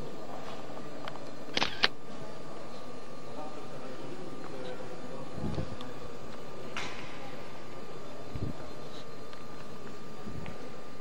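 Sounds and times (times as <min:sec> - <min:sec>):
camera shutter clicks: 0:01.5 - 0:02.0.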